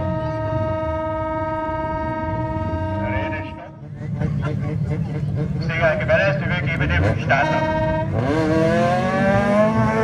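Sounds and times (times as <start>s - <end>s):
horn long steady note: 0.0s - 4.0s, 5.4s - 10.0s
race car engines running: 0.0s - 10.0s.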